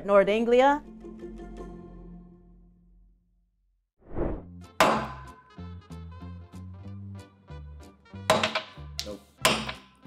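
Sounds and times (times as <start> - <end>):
short whoosh: 4.0 - 4.5.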